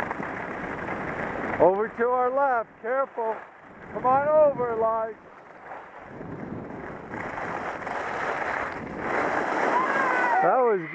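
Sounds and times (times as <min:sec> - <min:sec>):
skis scraping over snow: 0:00.0 - 0:02.4, 0:05.2 - 0:10.9
wind on microphone: 0:00.0 - 0:10.9.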